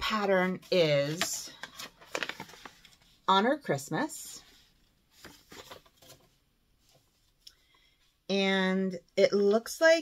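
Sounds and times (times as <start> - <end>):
paper sheet rustling: 0.0 - 3.2, 4.5 - 7.2.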